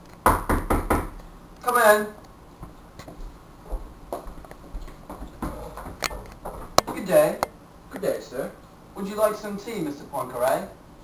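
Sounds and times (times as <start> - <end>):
knocking on a door: 0.2 - 1.2.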